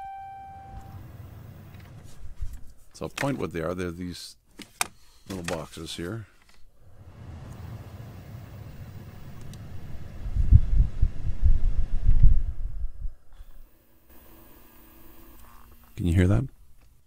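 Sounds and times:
blower fan rumbling: 0:06.7 - 0:14.2.

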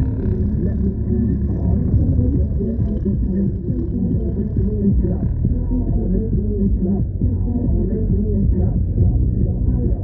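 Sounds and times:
car driving on road: 0:00.0 - 0:10.0.

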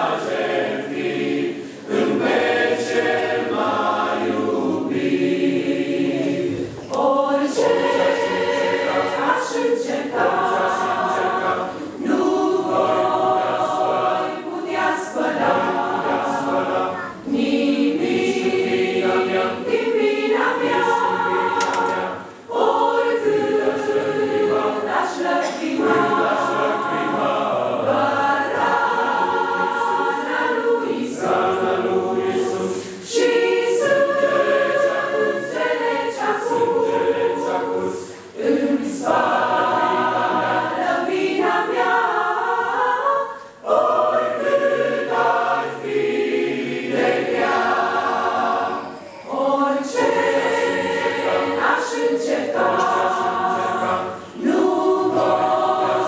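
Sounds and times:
church choir singing a hymn: 0:00.0 - 0:56.0.

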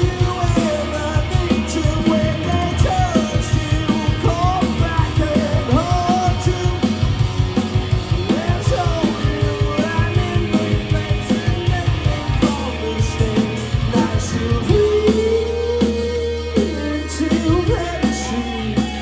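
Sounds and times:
person singing: 0:00.0 - 0:07.1, 0:08.1 - 0:19.0
fast driving drum beat: 0:00.0 - 0:19.0
live rock band playing: 0:00.0 - 0:19.0.

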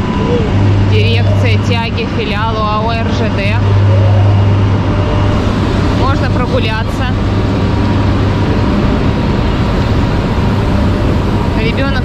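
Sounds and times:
cooling blowers running: 0:00.0 - 0:12.0
faint steady whines: 0:00.0 - 0:12.0
locomotive hum: 0:00.0 - 0:12.0.

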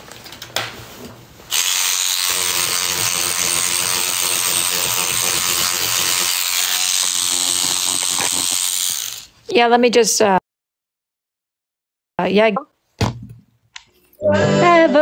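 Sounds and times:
small motorised tool whirring: 0:01.5 - 0:09.3.

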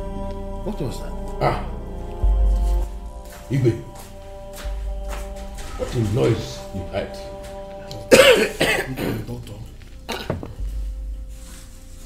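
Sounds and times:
soft sustained background music: 0:00.0 - 0:12.0
man coughing: 0:07.9 - 0:09.4, 0:10.1 - 0:10.6.

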